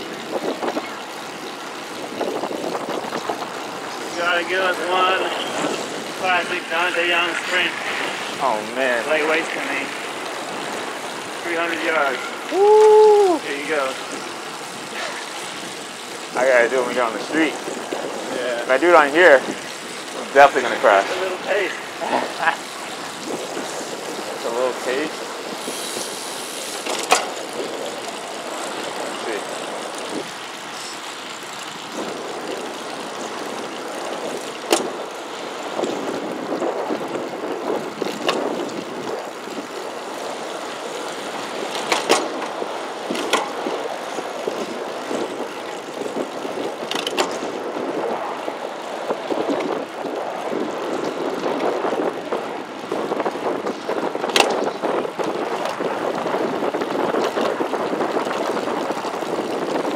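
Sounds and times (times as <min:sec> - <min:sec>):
road and traffic noise: 0:00.0 - 0:59.9
wind rushing over camera: 0:00.0 - 0:59.9.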